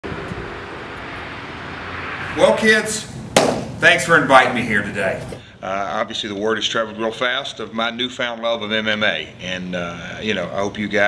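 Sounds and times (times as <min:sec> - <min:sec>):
low hum and hiss: 0:00.1 - 0:11.0.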